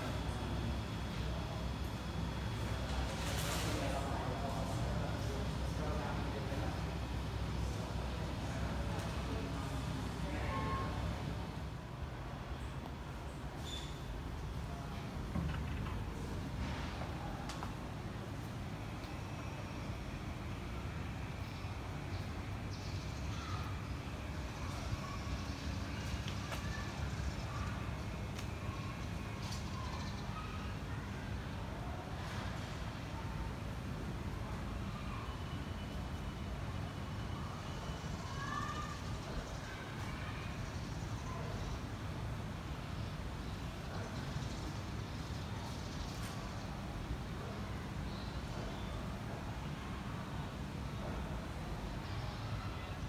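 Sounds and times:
low urban rumble: 0:00.0 - 0:53.0.

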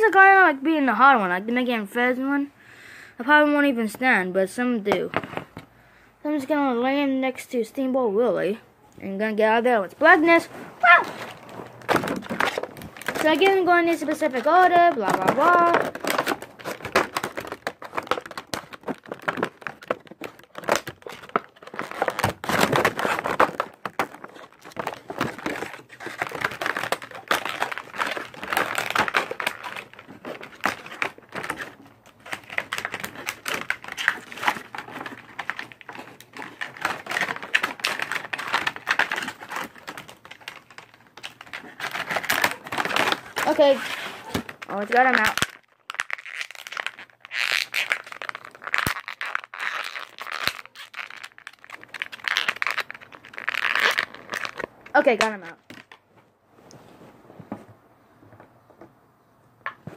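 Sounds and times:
plastic packaging crinkling: 0:10.0 - 0:56.0.

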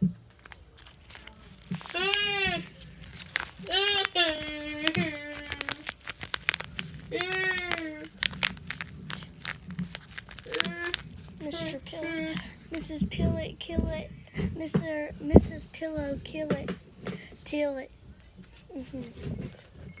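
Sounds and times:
paper crinkling and crunching: 0:00.0 - 0:14.0
girl's high wordless voice: 0:10.5 - 0:16.8, 0:17.4 - 0:18.0, 0:18.7 - 0:19.2.

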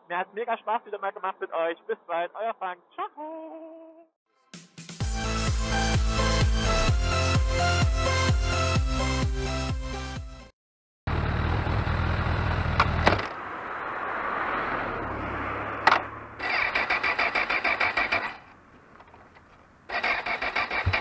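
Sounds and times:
motorcycle engine running: 0:11.1 - 0:13.0, 0:19.9 - 0:21.0
electric starter cranking engine: 0:16.4 - 0:18.5, 0:19.9 - 0:21.0.

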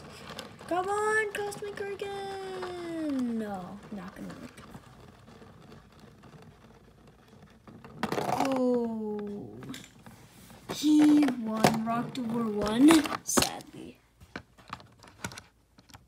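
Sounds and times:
spinning top whirring rattle: 0:00.0 - 0:08.9.

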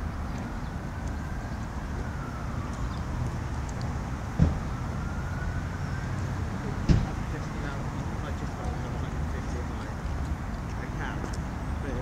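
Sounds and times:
distant road traffic rumble: 0:00.0 - 0:12.0
faint siren: 0:00.0 - 0:12.0.

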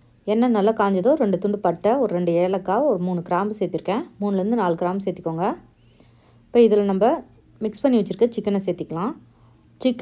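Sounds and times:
woman speaking: 0:00.2 - 0:05.8, 0:06.5 - 0:10.0.

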